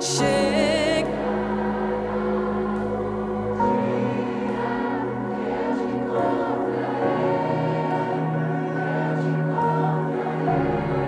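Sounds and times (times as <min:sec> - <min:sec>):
worship band music: 0:00.0 - 0:11.0.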